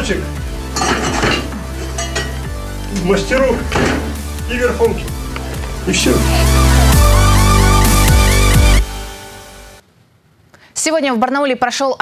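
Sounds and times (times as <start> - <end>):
background music with bass: 0.0 - 9.8
metal hand tools clinking: 0.7 - 2.6.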